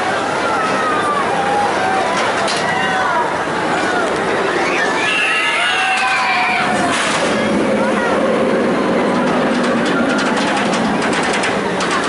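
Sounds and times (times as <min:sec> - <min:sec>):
crowd voices: 0:00.0 - 0:12.0
ride noise: 0:00.0 - 0:12.0
riders yelling and screaming: 0:00.3 - 0:07.0.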